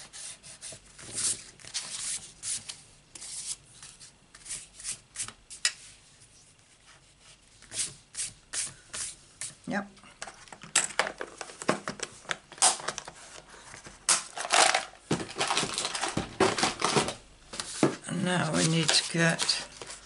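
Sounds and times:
card and paper rustling: 0:10.3 - 0:20.0.

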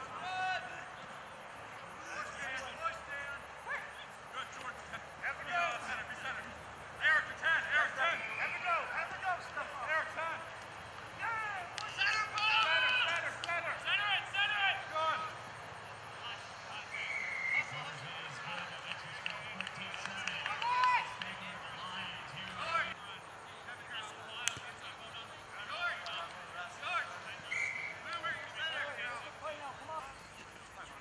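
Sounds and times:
distant shouts and calls: 0:00.0 - 0:31.0.

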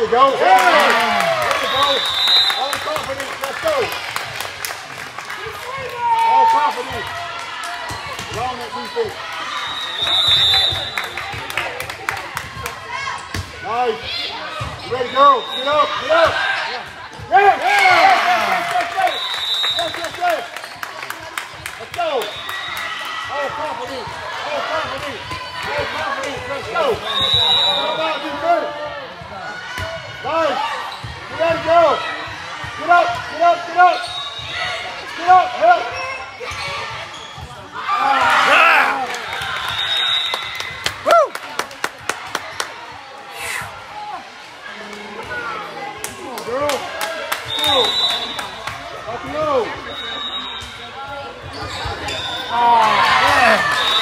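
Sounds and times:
sneaker squeaks on court: 0:35.9 - 0:37.6, 0:49.8 - 0:52.5.

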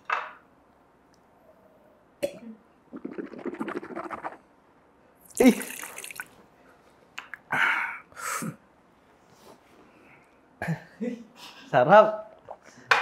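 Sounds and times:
gurgling sips through a straw: 0:02.9 - 0:04.5, 0:05.3 - 0:06.3.

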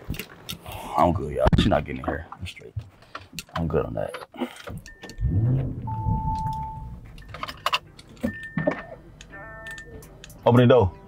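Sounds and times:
power window motor running: 0:05.1 - 0:07.1.

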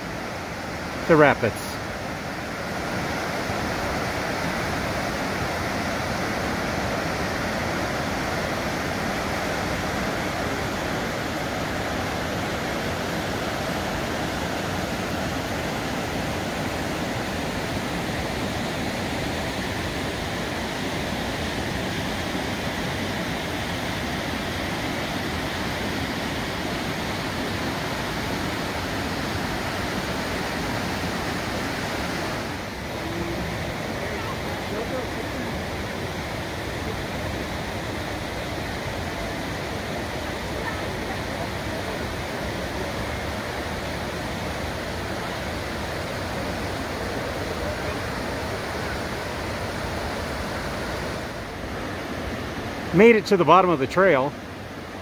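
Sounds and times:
water rushing over rocks: 0:00.0 - 0:55.0.

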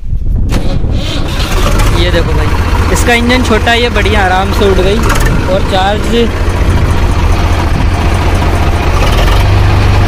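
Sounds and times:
tractor diesel engine running: 0:00.3 - 0:10.0
starter cranking engine: 0:00.5 - 0:10.0.

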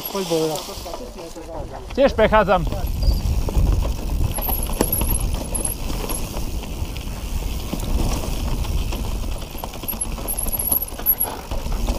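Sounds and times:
bike knocking and rattling: 0:00.0 - 0:11.9
wind rumble on microphone: 0:01.5 - 0:11.9.

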